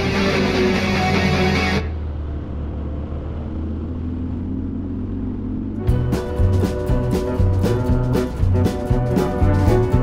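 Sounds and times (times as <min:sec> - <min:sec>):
road and wind noise: 0:00.0 - 0:10.0.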